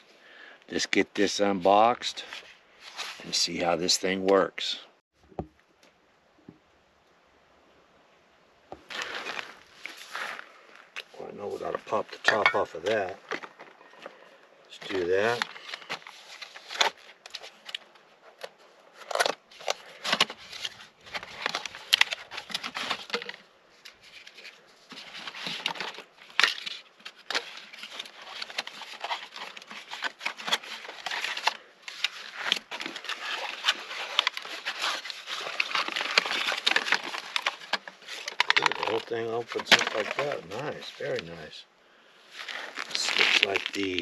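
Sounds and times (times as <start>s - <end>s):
cardboard rustling and scraping: 11.3s - 41.4s, 42.3s - 44.0s.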